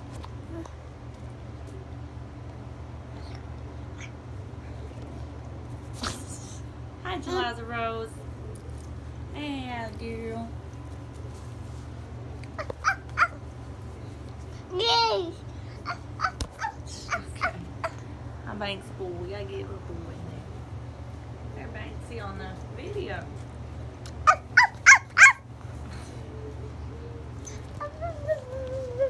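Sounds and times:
steady low hum: 0:00.0 - 0:29.0
small dog whimpering: 0:12.6 - 0:13.4, 0:15.8 - 0:18.0, 0:24.3 - 0:25.4, 0:26.2 - 0:29.0.

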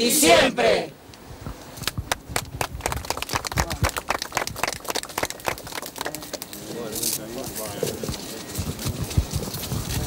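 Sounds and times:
voices: 0:00.0 - 0:01.0
crowd clapping: 0:02.1 - 0:06.6.

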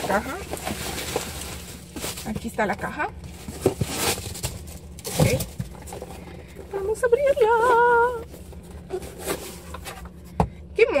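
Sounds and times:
cardboard rustling: 0:00.0 - 0:10.2.

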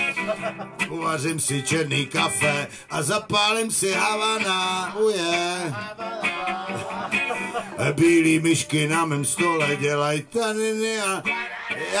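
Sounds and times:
acoustic guitar strumming: 0:00.0 - 0:12.0
person singing: 0:00.0 - 0:12.0.

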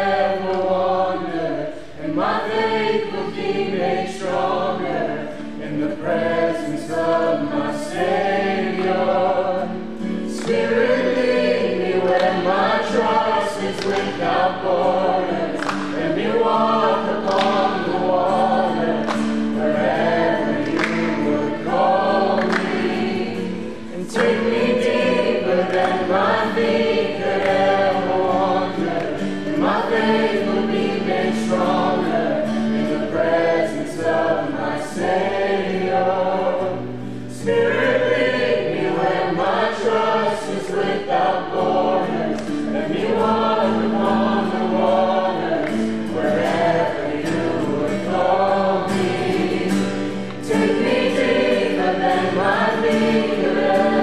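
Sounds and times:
group singing: 0:00.0 - 0:54.0
strummed acoustic guitar: 0:00.0 - 0:54.0
breaths: 0:01.7 - 0:02.0, 0:05.2 - 0:05.6, 0:36.9 - 0:37.3.

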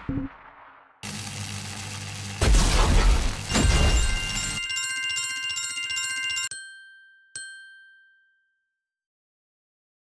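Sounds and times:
electronic bell-like chime trill: 0:03.5 - 0:08.6.

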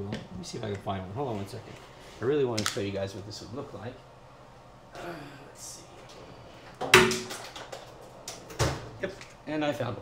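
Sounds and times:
sharp knock: 0:06.9 - 0:07.4.

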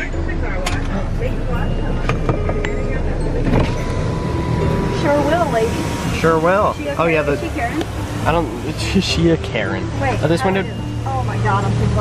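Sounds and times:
car engine idling: 0:00.0 - 0:12.0.

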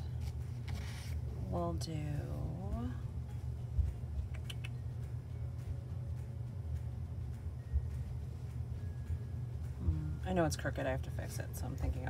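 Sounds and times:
steady low hum: 0:00.0 - 0:12.0
paper sticker sheet handling: 0:00.1 - 0:01.3.

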